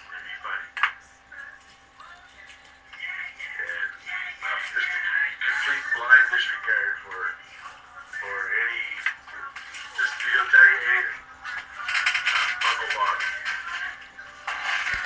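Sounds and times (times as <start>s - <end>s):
indistinct voices: 0.0s - 15.0s.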